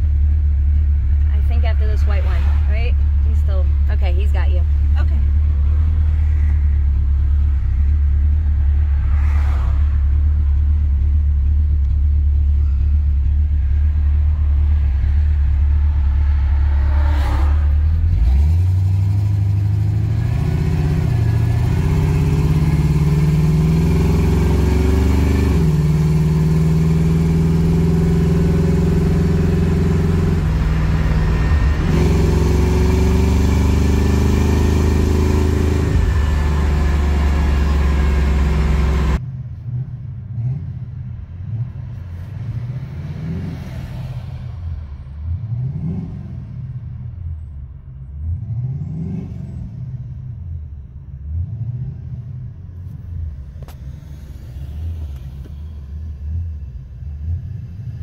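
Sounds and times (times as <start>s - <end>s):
car engine accelerating: 0.0s - 58.0s
road noise: 0.0s - 58.0s.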